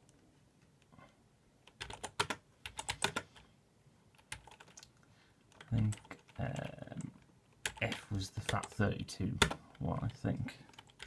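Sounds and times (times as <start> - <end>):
typing on computer keyboard: 1.7 - 3.4, 4.1 - 4.9, 5.5 - 8.8, 9.4 - 9.8, 10.7 - 11.0.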